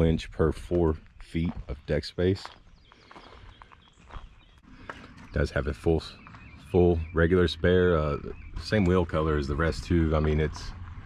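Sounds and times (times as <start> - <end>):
footsteps crunching on gravel: 0.0 - 7.5, 8.5 - 11.0.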